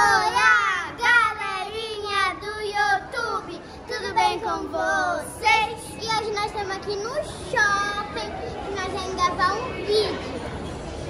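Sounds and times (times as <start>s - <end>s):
girls' high-pitched voices: 0.0s - 10.4s.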